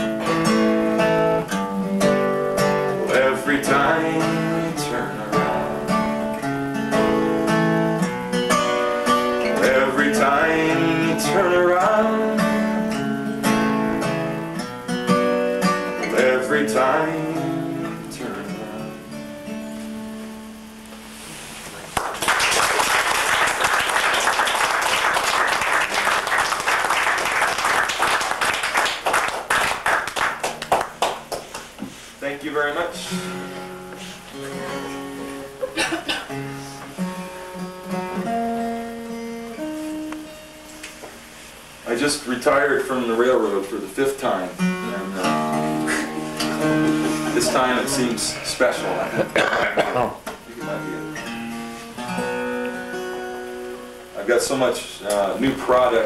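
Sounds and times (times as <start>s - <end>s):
acoustic guitar picking: 0.0s - 56.0s
audience applause: 21.8s - 31.7s, 45.9s - 48.4s.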